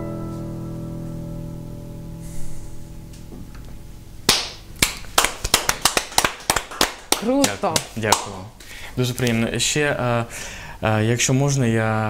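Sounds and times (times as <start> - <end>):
digital piano chord: 0.0 - 3.4
people clapping: 4.3 - 8.5.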